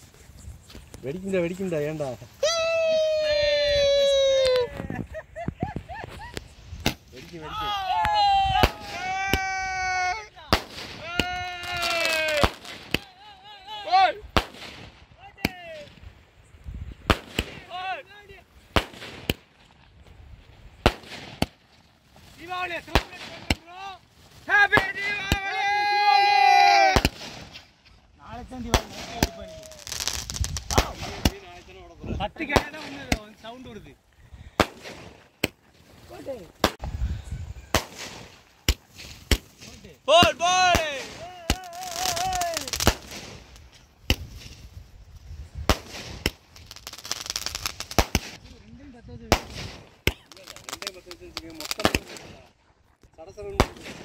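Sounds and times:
fireworks crackling: 0.0s - 54.0s
fireworks bangs: 5.6s - 13.2s, 13.9s - 16.0s, 17.0s - 19.9s, 20.5s - 33.7s, 34.5s - 37.0s, 37.7s - 44.7s, 45.6s - 48.5s, 49.2s - 52.5s, 53.5s - 54.0s.

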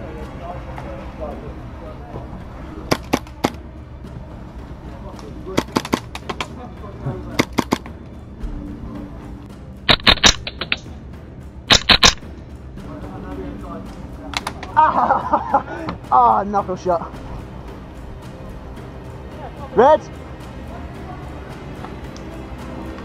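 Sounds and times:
airsoft guns firing: 9.9s - 10.8s, 11.7s - 12.2s.

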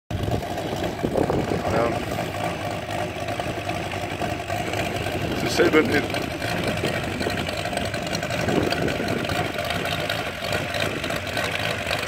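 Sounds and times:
model aircraft engine idling: 0.1s - 12.0s.

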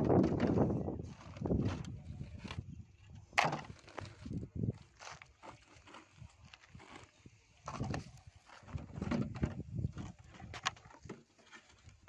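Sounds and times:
tools set down on ground: 3.3s - 4.1s.

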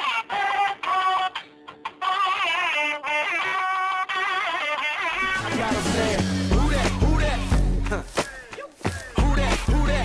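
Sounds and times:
music with ornamented vocal-like melody: 0.0s - 10.0s.

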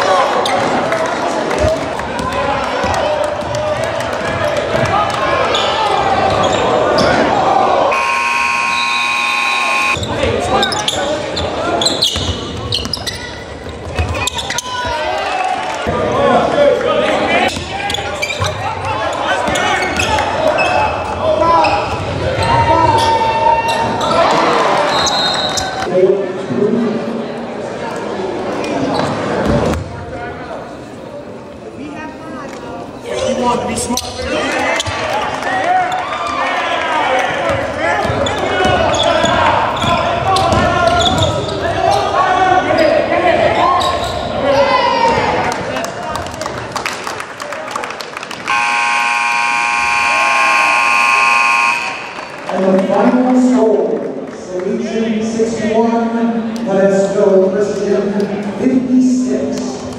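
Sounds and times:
crowd voices: 0.0s - 59.9s
scoreboard buzzer: 7.9s - 10.0s, 48.5s - 52.3s
basketball bouncing on court: 12.1s - 14.6s.

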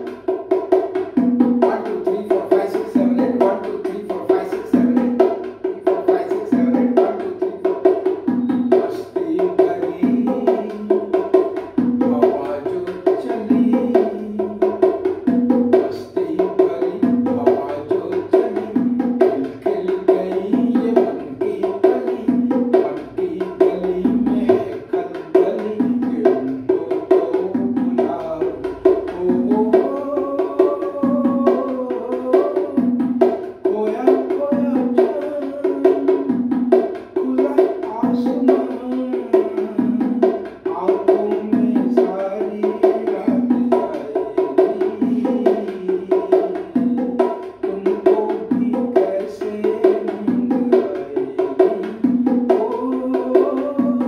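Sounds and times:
bongos played by hand: 0.0s - 54.0s.

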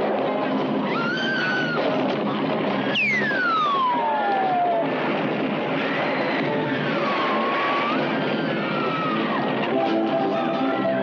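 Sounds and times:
eerie electronic horror score: 0.5s - 11.0s.

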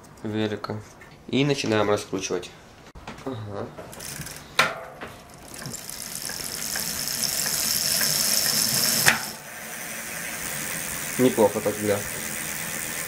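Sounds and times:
bicycle wheel whirring: 3.8s - 13.0s.

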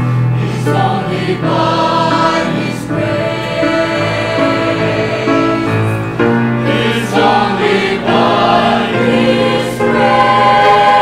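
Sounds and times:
male choir singing a hymn: 0.4s - 11.0s.

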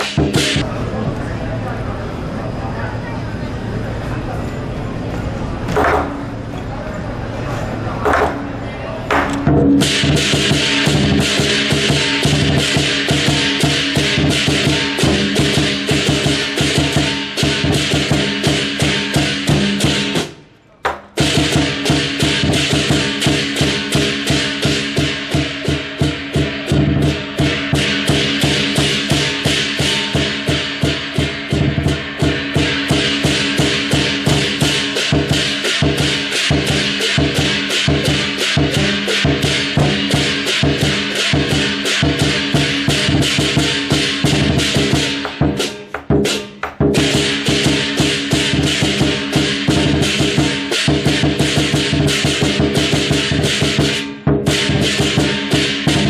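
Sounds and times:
drum cymbals and gong beat: 0.0s - 0.7s, 9.2s - 20.4s, 21.1s - 56.0s.

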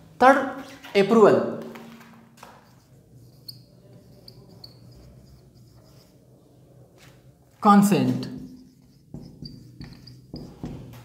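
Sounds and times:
marker squeaking on whiteboard: 2.4s - 7.2s, 8.1s - 11.0s
faint low hum: 8.2s - 11.0s.

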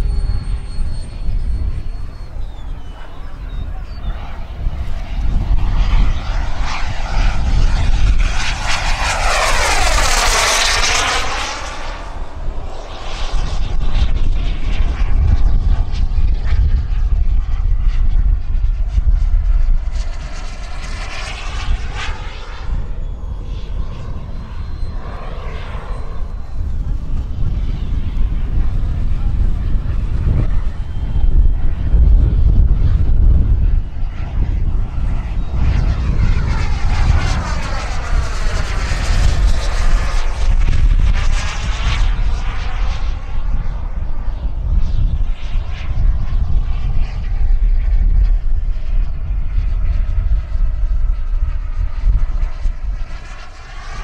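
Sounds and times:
model jet turbine whine: 0.0s - 54.0s
wind rumble on microphone: 0.0s - 54.0s.

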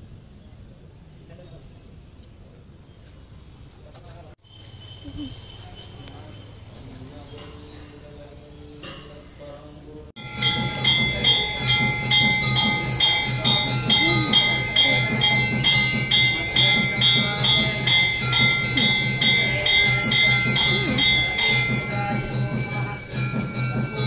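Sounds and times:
temple bells ringing: 10.2s - 24.0s.

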